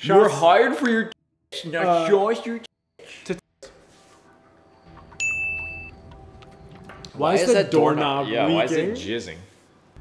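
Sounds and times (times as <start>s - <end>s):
bell-like ding: 5.2s - 5.9s.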